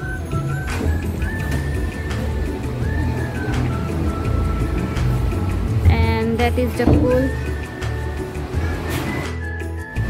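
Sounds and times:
music with repeating bass: 0:00.0 - 0:10.0.

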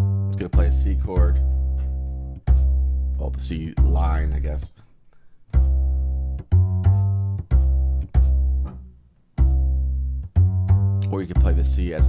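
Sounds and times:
plucked upright bass line: 0:00.0 - 0:04.7, 0:05.5 - 0:12.0.

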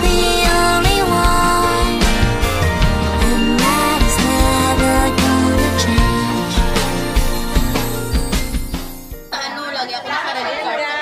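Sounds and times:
music track: 0:00.0 - 0:09.8.

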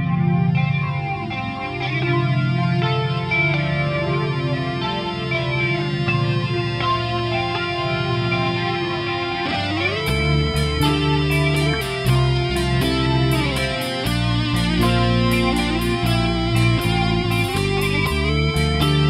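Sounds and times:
bass guitar: 0:00.0 - 0:19.0
distorted electric guitars: 0:00.0 - 0:19.0
drums: 0:10.0 - 0:19.0.

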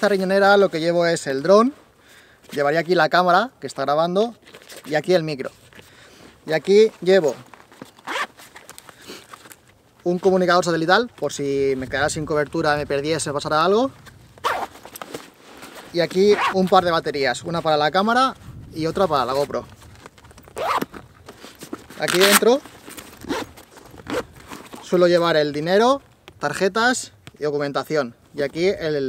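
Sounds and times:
bag fabric rustling: 0:04.4 - 0:10.4, 0:14.2 - 0:18.0, 0:19.0 - 0:26.2
zipper pulled open: 0:07.2 - 0:09.6, 0:14.4 - 0:16.7, 0:20.1 - 0:25.0.

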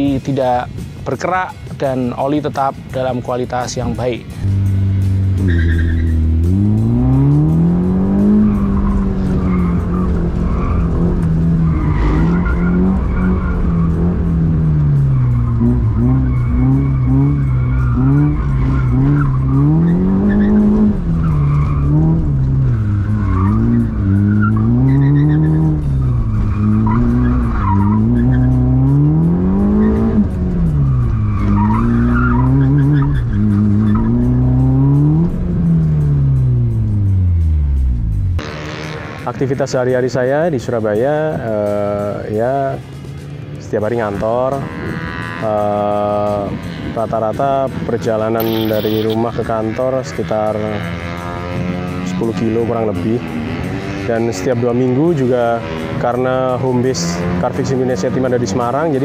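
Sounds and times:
car engine revving: 0:04.2 - 0:40.2, 0:42.7 - 0:59.0.

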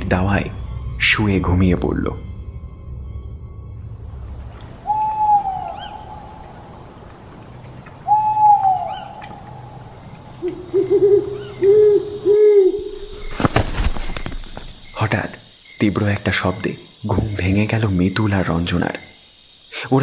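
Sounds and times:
owl hooting: 0:04.7 - 0:06.7, 0:08.0 - 0:13.3.

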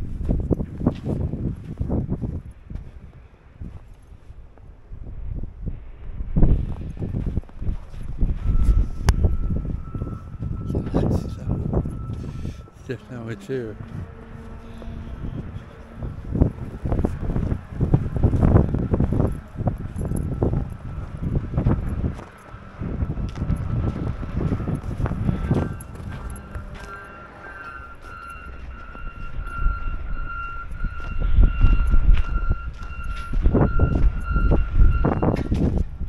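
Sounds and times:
footsteps in snow: 0:00.0 - 0:04.6, 0:23.2 - 0:29.1
wind buffeting microphone: 0:00.0 - 0:36.0
vehicle backup alarm beeping: 0:07.9 - 0:35.8.

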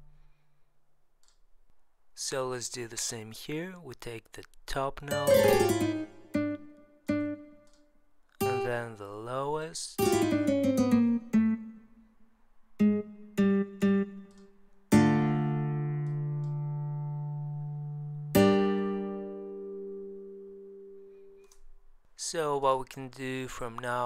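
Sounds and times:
nylon-string guitar chords: 0:05.1 - 0:07.7, 0:08.4 - 0:09.0, 0:10.0 - 0:21.4.

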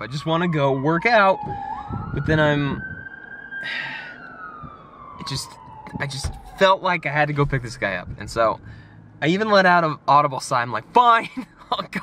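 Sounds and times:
siren wailing: 0:00.0 - 0:08.2.

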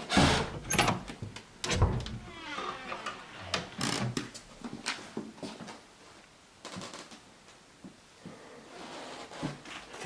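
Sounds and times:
wooden door creaking: 0:00.0 - 0:04.3
door clicks and knocks: 0:00.1 - 0:02.3.

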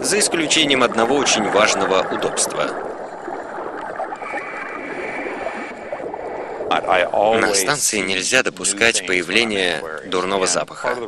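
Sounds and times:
underwater air bubbling: 0:00.0 - 0:10.4.

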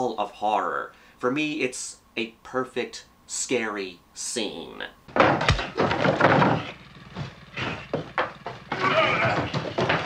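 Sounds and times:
sharp knocks: 0:05.1 - 0:10.0
squealing bleat-like cries: 0:08.7 - 0:09.7.

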